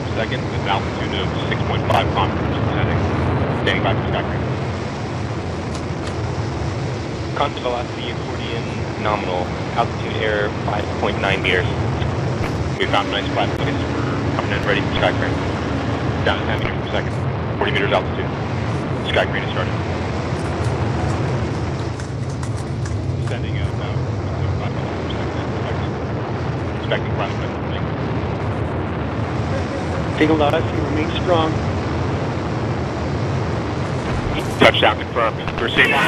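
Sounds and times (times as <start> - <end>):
faint crackles: 0.0 - 36.0
low rumble: 0.0 - 36.0.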